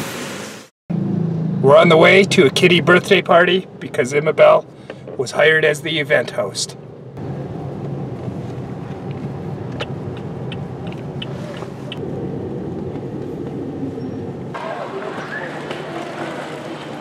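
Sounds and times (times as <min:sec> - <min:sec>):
car engine and road noise: 0:00.0 - 0:17.0.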